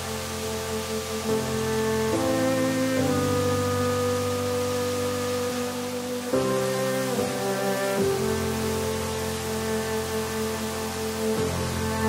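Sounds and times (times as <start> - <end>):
music sustained chord: 0.0 - 12.0.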